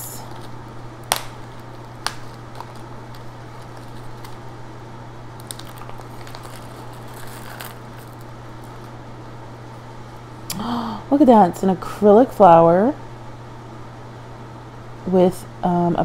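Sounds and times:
steady low hum: 0.0 - 16.0
plastic bag crinkling: 0.2 - 4.5, 5.4 - 9.0.

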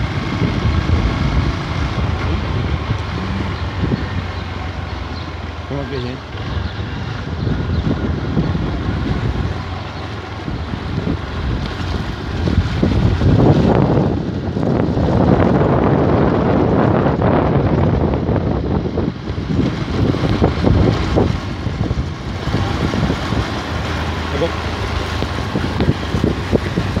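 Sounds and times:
motorcycle engine running: 0.0 - 27.0
wind buffeting microphone: 0.0 - 27.0.

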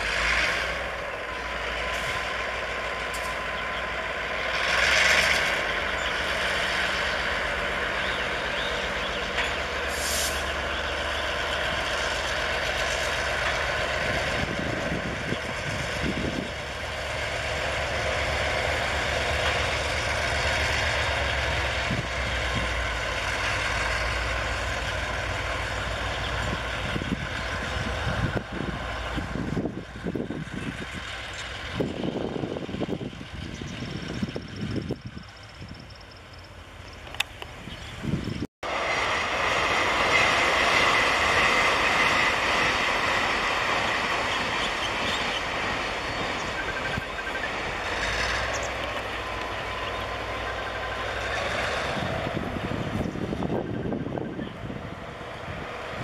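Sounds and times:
locomotive engine drone: 0.0 - 56.0
wheels rolling on rails: 0.0 - 56.0
air hiss: 9.9 - 10.5.

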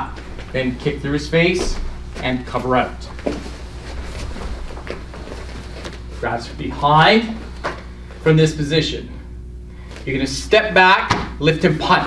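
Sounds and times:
low steady hum: 0.0 - 12.0
soft knocks and rustles: 1.5 - 6.3.

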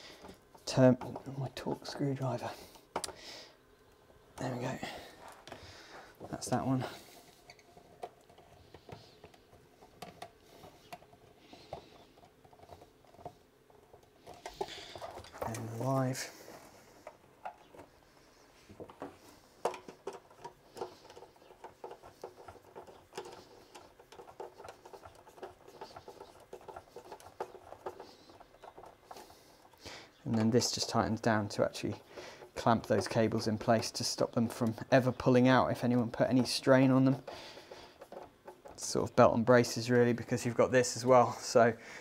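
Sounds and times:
clicks taps and scraping on plastic: 0.0 - 3.2, 3.8 - 40.6.

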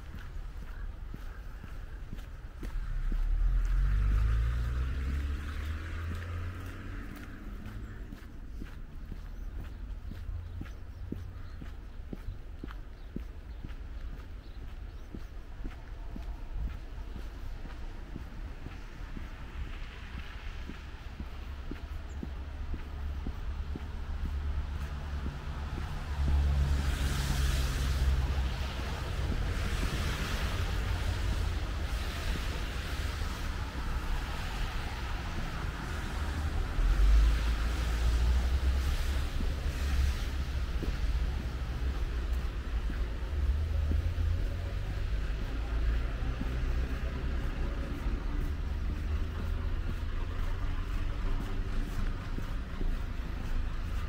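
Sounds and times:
low rumble of traffic: 0.0 - 54.0
tyres hissing on wet road: 2.8 - 8.1, 17.4 - 54.0
vehicle driving past: 3.0 - 8.2.

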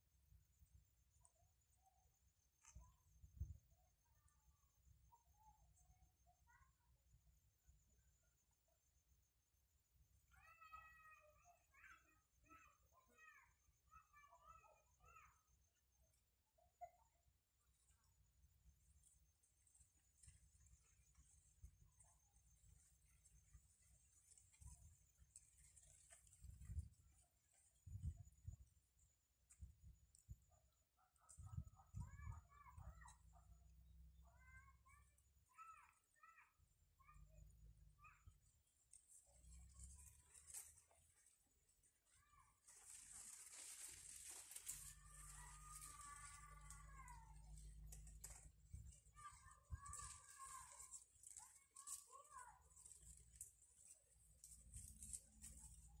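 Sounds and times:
distant animal cries: 10.3 - 13.4, 34.3 - 37.2, 44.7 - 48.3
faint animal call: 10.3 - 15.5, 30.5 - 53.9.

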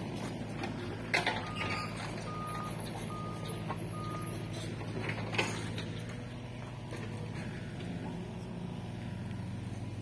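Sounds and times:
heavy machine engine running: 0.0 - 10.0
reversing alarm beeps: 1.4 - 4.7.

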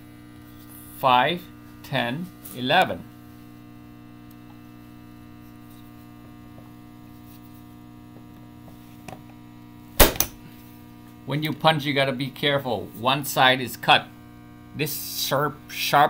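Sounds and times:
electrical mains hum: 0.0 - 16.0
punch-down tool snap: 10.0 - 10.4.

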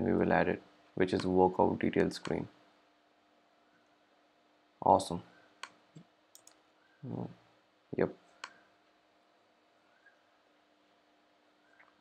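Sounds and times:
computer mouse click: 5.6 - 6.6.

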